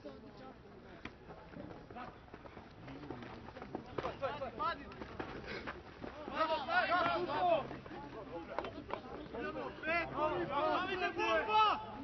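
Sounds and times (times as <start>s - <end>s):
players shouting: 6.1s - 7.7s, 9.4s - 12.0s.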